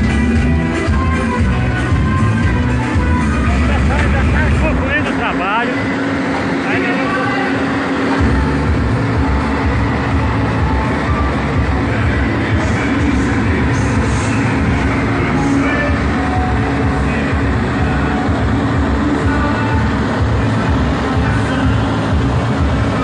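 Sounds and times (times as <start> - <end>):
heavy low rumble: 0.0 - 23.0
loud crowd voices: 0.0 - 23.0.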